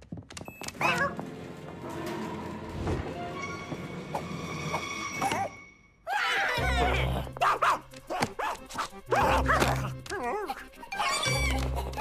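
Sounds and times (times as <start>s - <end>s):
background music with held notes: 0.8s - 6.0s, 6.6s - 12.0s
squeaky cartoon character cry: 10.9s - 12.0s.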